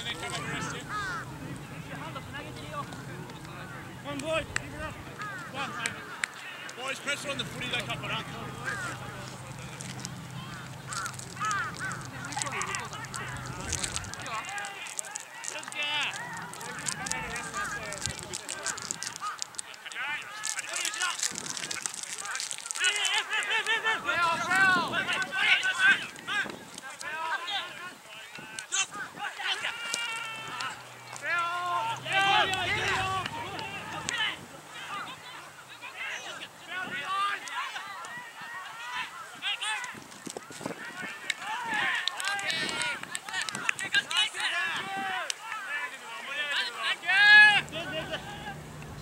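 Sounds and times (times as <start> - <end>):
players shouting at a distance: 0.0 - 21.3, 21.9 - 49.0.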